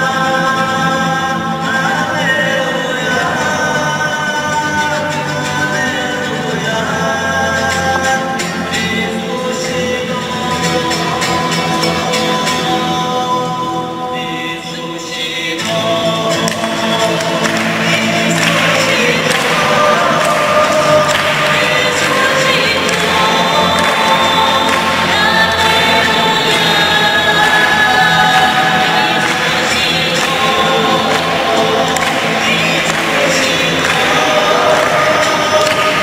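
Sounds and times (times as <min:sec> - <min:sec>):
choir singing with music: 0:00.0 - 0:36.0.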